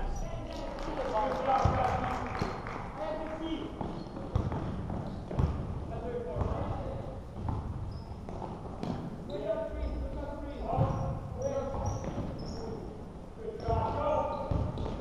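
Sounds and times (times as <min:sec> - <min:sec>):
basketball bouncing on wooden floor: 0:03.8 - 0:05.8, 0:07.4 - 0:09.1, 0:10.7 - 0:11.1, 0:14.5 - 0:15.0.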